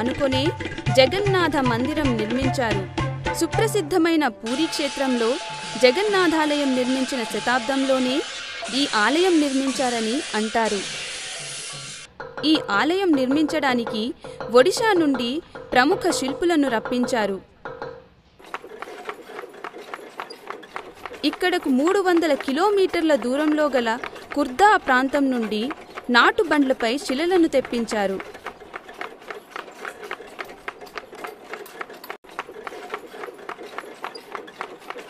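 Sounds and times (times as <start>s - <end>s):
hoofbeats clopping: 18.5s - 35.0s.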